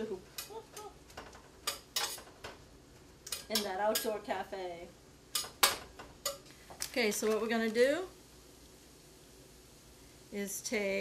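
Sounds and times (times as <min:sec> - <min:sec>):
utensils and dishes clicking: 0:01.2 - 0:02.4.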